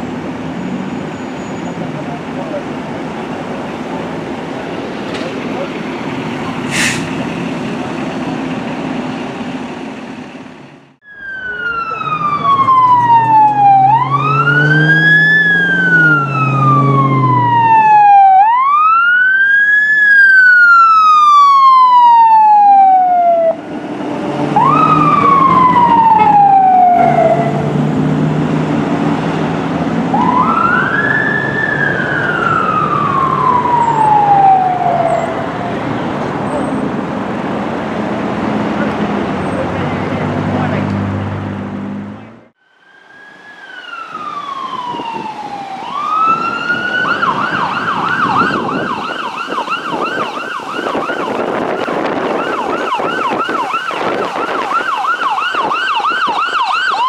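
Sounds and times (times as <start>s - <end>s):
fire engine siren wailing: 11.0s - 41.4s, 42.7s - 57.0s.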